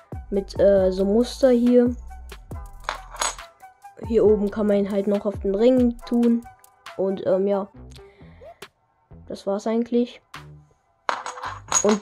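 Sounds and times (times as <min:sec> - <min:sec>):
music with steady beat: 0:00.0 - 0:07.1
keys clinking on key ring: 0:02.8 - 0:03.4, 0:11.1 - 0:12.0.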